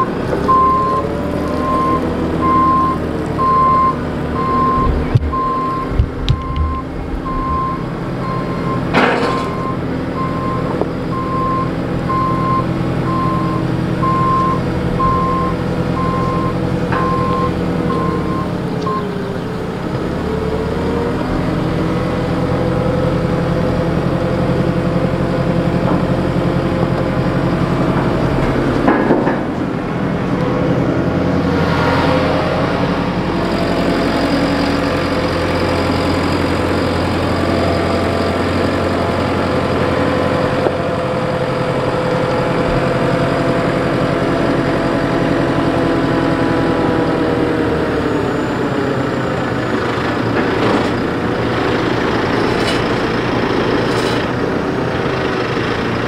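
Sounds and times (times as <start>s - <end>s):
diesel engine running: 0.0s - 56.0s
loud metal clank: 8.8s - 9.8s.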